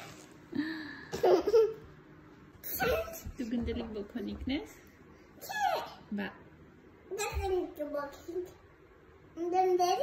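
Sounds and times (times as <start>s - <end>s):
toddler laughing: 1.2s - 1.9s.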